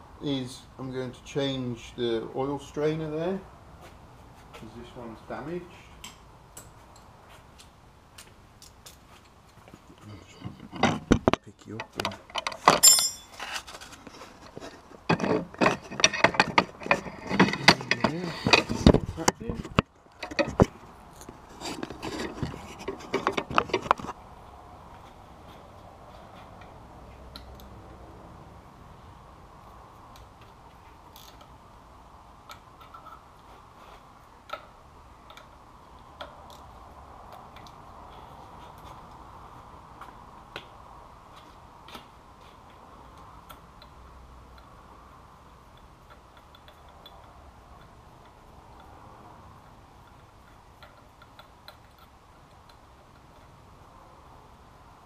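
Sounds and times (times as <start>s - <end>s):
metal tools clattering: 11.8s - 14.0s, 15.1s - 18.8s.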